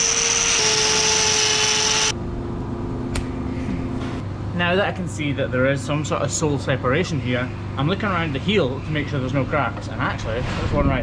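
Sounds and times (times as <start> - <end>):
angle grinder whining: 0.0 - 2.2
low hum: 0.8 - 5.6.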